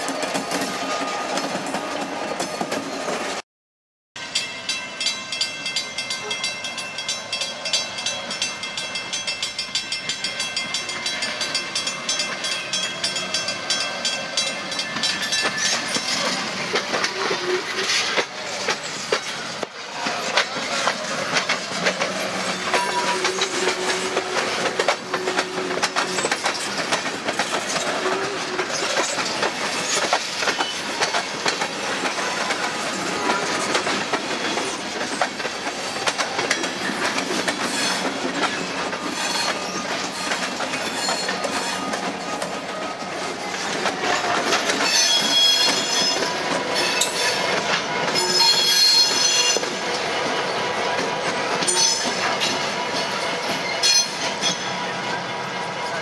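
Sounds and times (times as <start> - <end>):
train wheels clacking over rail joints: 0.0 - 3.4, 5.8 - 54.8
high-pitched wheel flange squeal: 39.1 - 42.0, 44.8 - 47.4, 48.2 - 49.7, 51.6 - 52.5.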